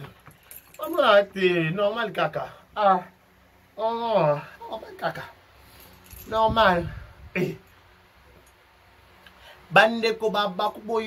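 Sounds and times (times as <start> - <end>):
man talking: 0.8 - 3.2, 3.8 - 5.4, 6.2 - 7.6, 9.7 - 11.0.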